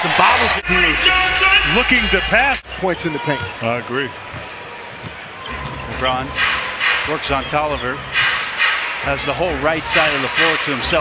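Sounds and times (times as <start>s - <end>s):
arena crowd noise: 0.0s - 11.0s
basketball dribbling on hardwood: 3.4s - 5.9s.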